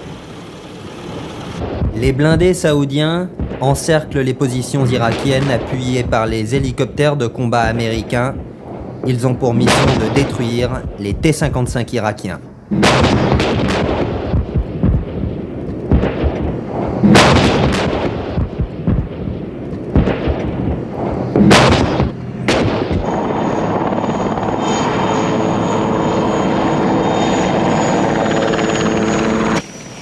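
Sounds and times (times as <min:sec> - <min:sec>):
rumbling background: 0:00.0 - 0:29.6
loud weapon blasts: 0:01.6 - 0:11.3, 0:12.7 - 0:23.8.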